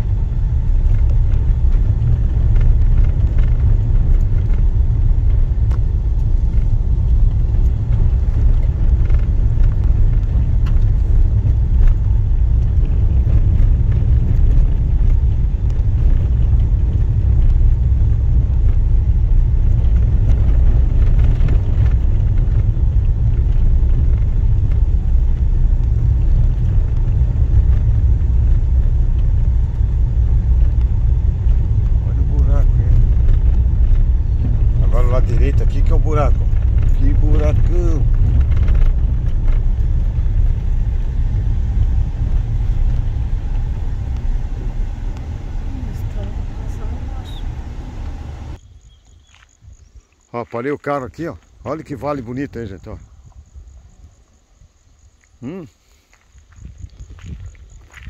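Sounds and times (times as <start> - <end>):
car driving on dirt road: 0.0 - 58.0.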